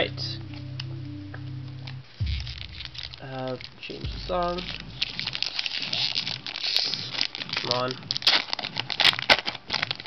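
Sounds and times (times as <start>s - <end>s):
foil wrapper crinkling: 2.2s - 10.0s.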